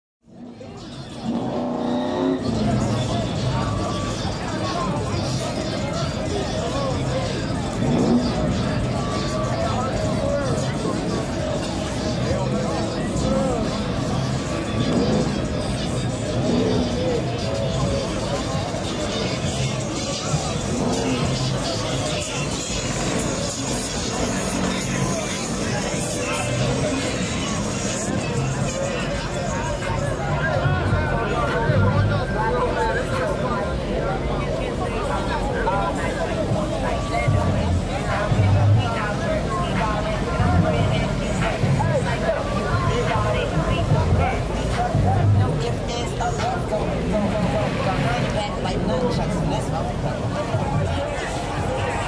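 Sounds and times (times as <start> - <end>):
background chatter: 0.2 - 52.0
crowd voices: 0.2 - 52.0
music: 0.2 - 52.0
car engine revving: 1.0 - 3.8, 7.3 - 9.4, 13.1 - 29.0.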